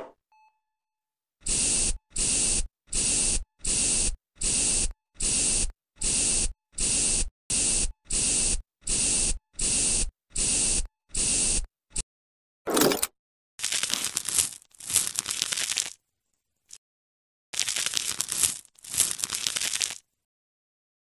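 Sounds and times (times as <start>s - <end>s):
spray bottle spraying: 1.5s - 11.6s.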